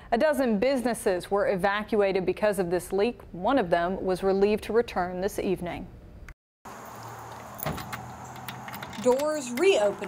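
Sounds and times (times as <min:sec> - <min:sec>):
keys jangling: 0:07.4 - 0:09.9
key working door lock: 0:07.6 - 0:09.9.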